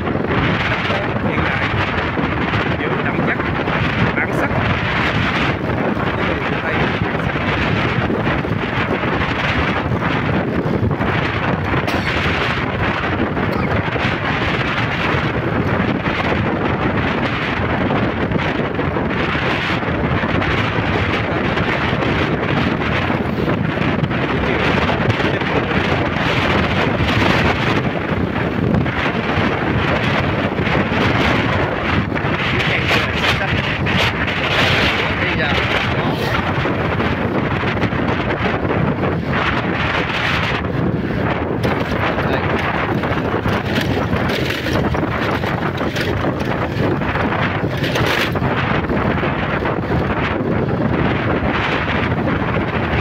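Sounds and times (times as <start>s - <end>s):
wind rushing over microphone: 0.0s - 53.0s.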